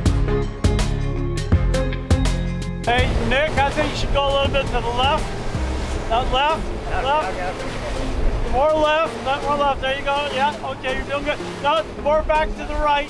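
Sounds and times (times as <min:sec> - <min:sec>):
boat engine: 0:02.3 - 0:13.0
men talking and laughing: 0:02.9 - 0:13.0
water rushing: 0:02.9 - 0:13.0
wind noise: 0:02.9 - 0:13.0.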